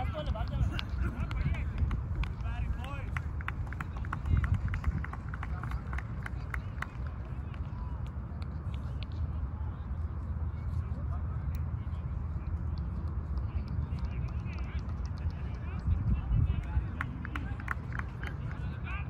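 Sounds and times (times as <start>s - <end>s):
wind on microphone: 0.0s - 6.8s, 15.2s - 17.6s.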